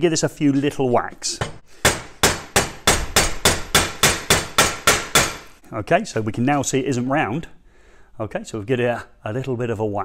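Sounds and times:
hammer striking metal cable: 0:01.4 - 0:05.6.

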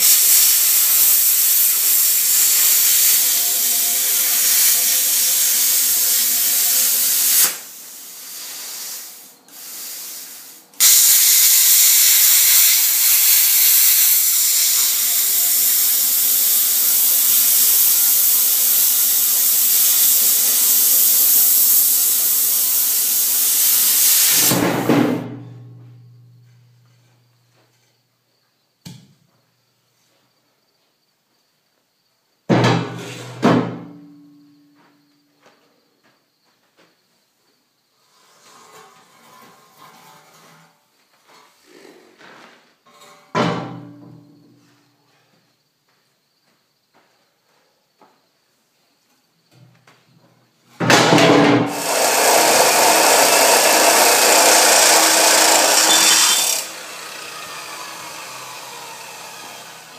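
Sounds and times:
plasma cutter hissing: 0:00.0 - 0:24.6.

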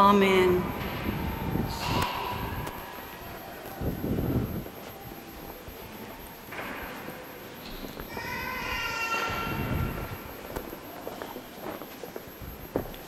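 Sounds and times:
shuffling footsteps: 0:02.6 - 0:08.3, 0:09.6 - 0:13.0.

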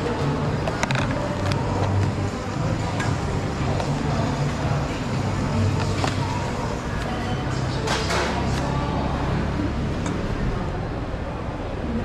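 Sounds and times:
roadside traffic: 0:00.0 - 0:12.0.

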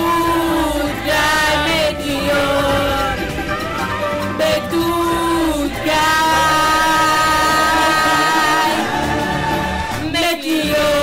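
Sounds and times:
full band accompaniment: 0:00.0 - 0:10.3.

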